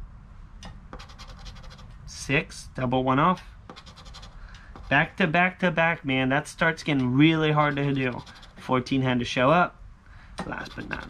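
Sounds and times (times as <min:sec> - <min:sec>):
faint steady background noise: 0:00.0 - 0:11.0
coin scraping lottery ticket: 0:01.0 - 0:01.9, 0:03.7 - 0:05.1, 0:07.6 - 0:08.7, 0:10.5 - 0:11.0.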